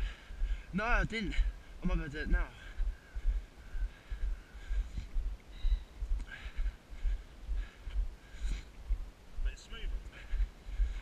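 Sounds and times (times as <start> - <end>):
wind buffeting microphone: 2.3 - 11.0.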